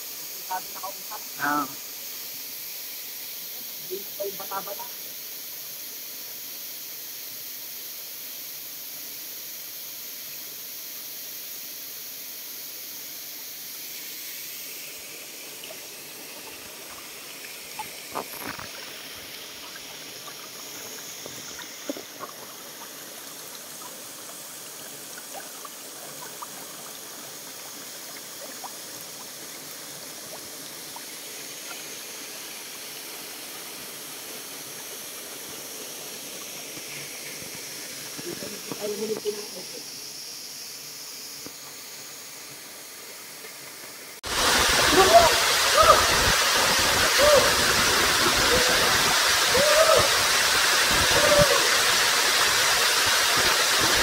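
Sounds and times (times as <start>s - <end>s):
creek water trickling over stones: 13.6s - 54.0s.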